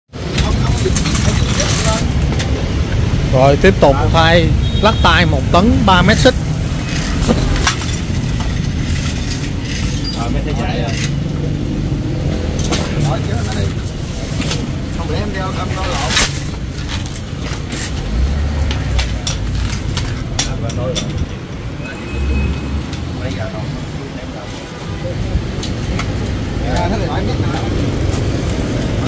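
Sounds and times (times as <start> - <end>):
road traffic rumble: 0.1 - 29.0.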